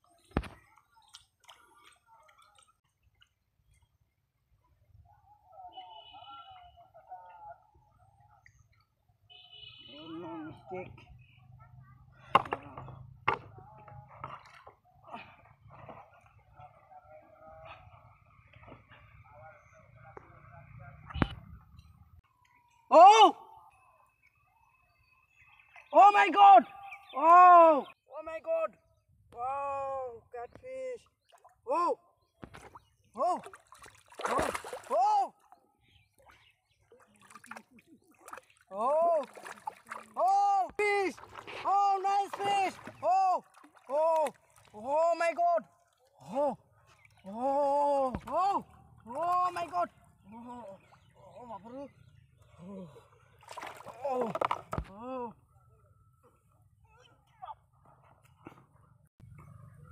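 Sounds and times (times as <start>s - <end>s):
person calling out excitedly: 22.9s - 23.5s
fish splashing in water: 32.4s - 35.0s, 36.9s - 40.3s, 41.2s - 44.8s, 53.3s - 54.9s.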